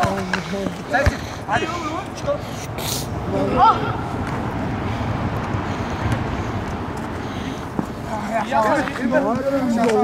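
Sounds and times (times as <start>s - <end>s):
football being kicked: 0.9s - 1.2s.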